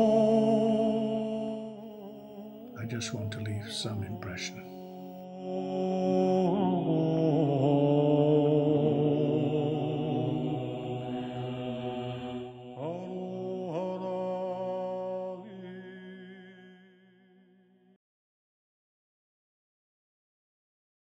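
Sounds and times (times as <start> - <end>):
slow chant of held notes: 0.0 - 17.6.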